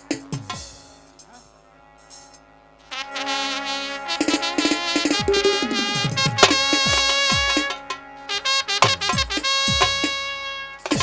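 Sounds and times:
drum strokes: 4.2 - 8.0
held instrumental note: 4.3 - 8.1.

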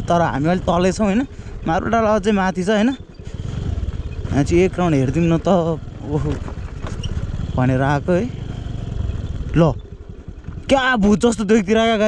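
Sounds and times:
motor scooter engine rumble: 0.0 - 12.0.

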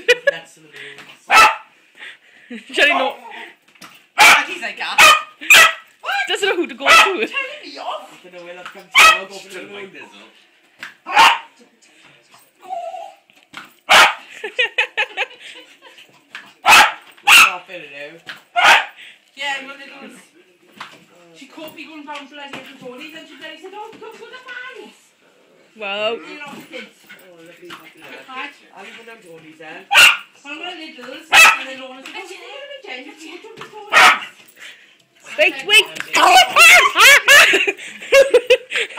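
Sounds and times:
small dog barking: 1.3 - 1.7, 4.2 - 5.9, 6.9 - 7.3, 9.0 - 9.3, 11.1 - 11.6, 13.9 - 14.2, 16.6 - 17.5, 18.6 - 19.0, 29.9 - 30.3, 31.3 - 31.7, 33.9 - 34.3.

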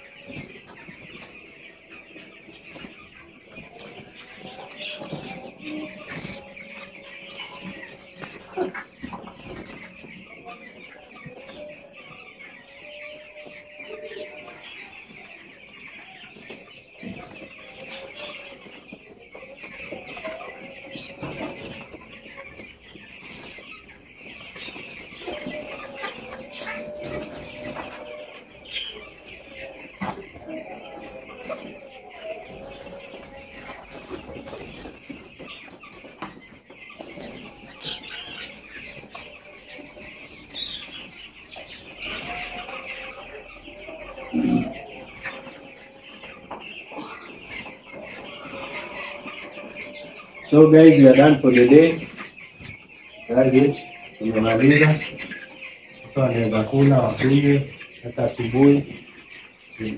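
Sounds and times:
chicks cheeping: 0.0 - 59.9.

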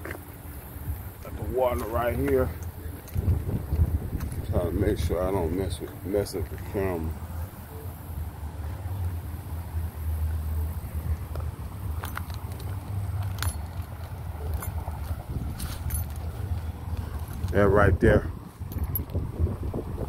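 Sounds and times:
wind buffeting microphone: 0.7 - 7.2, 10.8 - 20.0.

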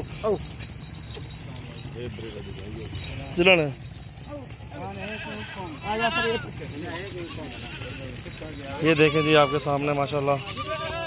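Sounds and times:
goats bleating: 4.7 - 11.0.

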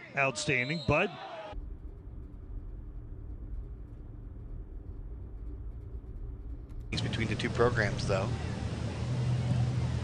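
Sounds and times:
low outdoor rumble: 1.6 - 10.0.

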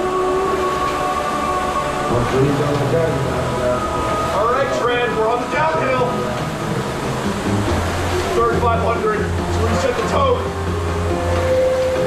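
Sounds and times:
rowing machine fan whooshing: 0.0 - 12.0.

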